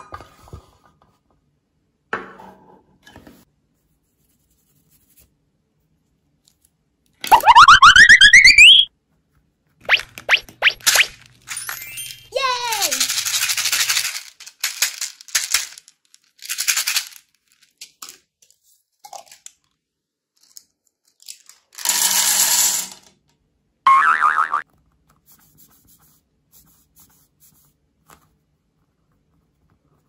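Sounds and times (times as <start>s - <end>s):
cartoon boing glide: 7.3s - 8.9s, 23.9s - 24.6s
wobbling pitched sound: 7.3s - 8.9s
plastic beads rattling: 9.9s - 18.2s, 20.4s - 23.1s.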